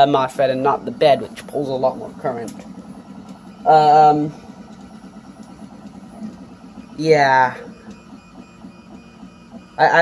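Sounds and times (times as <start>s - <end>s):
cooling fans humming: 0.0s - 10.0s.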